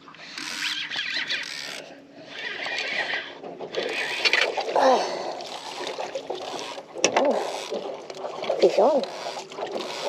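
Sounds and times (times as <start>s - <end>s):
fishing reel whirring: 0.2s - 4.5s, 5.4s - 7.8s, 9.0s - 10.0s.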